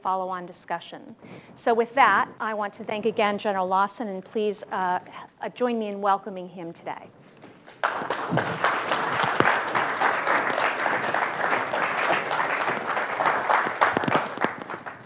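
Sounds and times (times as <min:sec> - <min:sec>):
audience applauding: 0:07.7 - 0:15.0.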